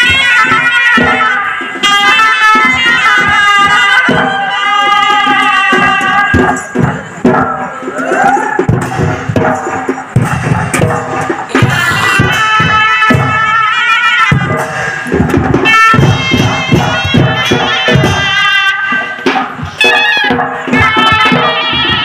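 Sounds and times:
reedy pipe melody: 0:00.0 - 0:07.4, 0:10.7 - 0:22.0
drums beating: 0:00.0 - 0:22.0.

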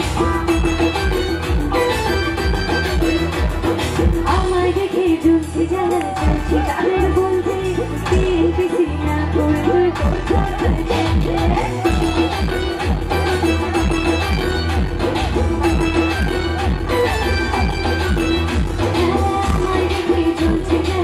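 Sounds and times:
live band playing pop song: 0:00.0 - 0:21.0
pulsing bass: 0:00.0 - 0:21.0
steady drum beat: 0:09.5 - 0:21.0.

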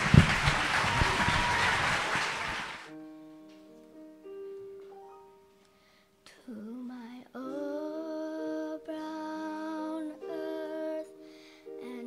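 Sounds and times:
piano accompaniment: 0:00.0 - 0:12.0.

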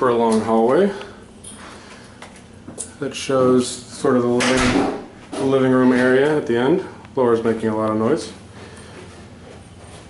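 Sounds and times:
air-conditioning blower hiss: 0:00.0 - 0:10.0.

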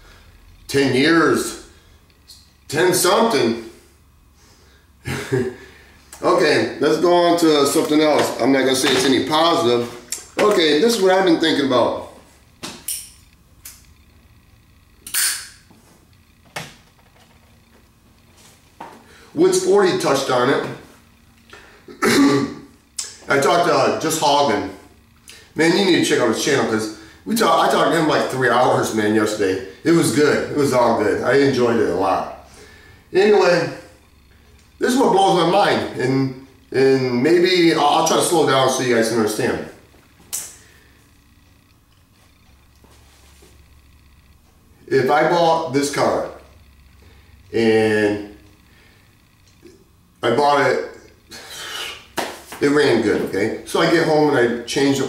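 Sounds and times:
low room hum: 0:00.0 - 0:55.0
cigarette being lit: 0:15.0 - 0:15.6.

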